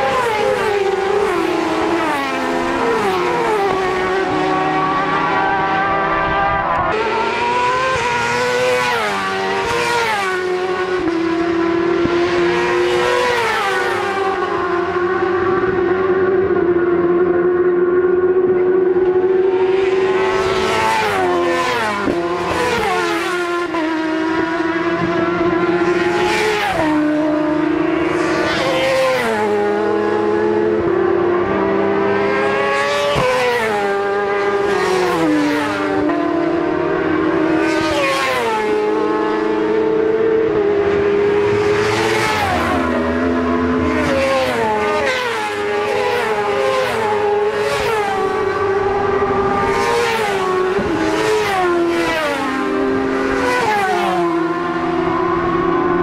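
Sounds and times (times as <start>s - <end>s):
racing motorcycles passing: 0.0s - 56.0s.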